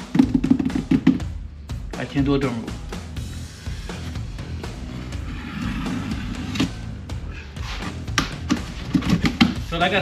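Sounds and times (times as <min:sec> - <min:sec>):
music with drum beat: 0:00.0 - 0:04.9, 0:05.8 - 0:10.0.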